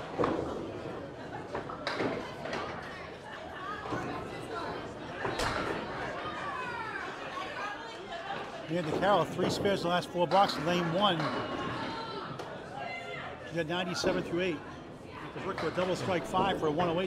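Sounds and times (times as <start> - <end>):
background chatter: 0.0 - 17.0.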